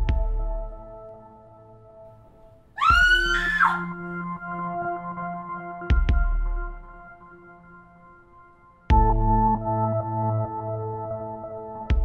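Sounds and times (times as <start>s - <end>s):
high-pitched scream: 2.8s - 4.0s
ambient synth music: 3.2s - 12.0s.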